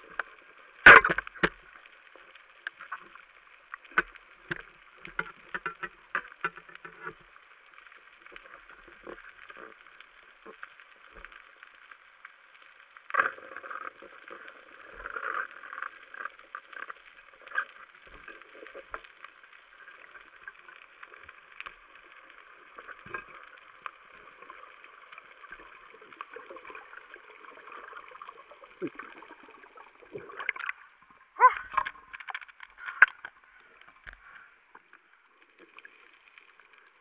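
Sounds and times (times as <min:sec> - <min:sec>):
underwater crackling hiss: 0:00.0 - 0:37.0.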